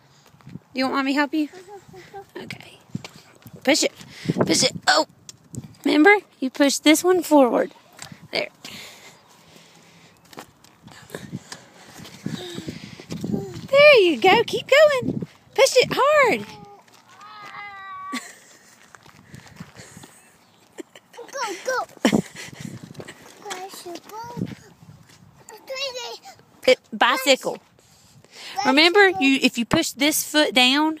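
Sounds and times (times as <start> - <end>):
child making high-pitched sounds: 1.5 - 2.4, 12.3 - 13.7, 16.3 - 18.3, 21.2 - 22.0, 23.4 - 24.7, 25.4 - 26.4
footsteps on concrete: 1.6 - 5.7, 7.8 - 25.6
child's bike being handled: 21.2 - 25.7.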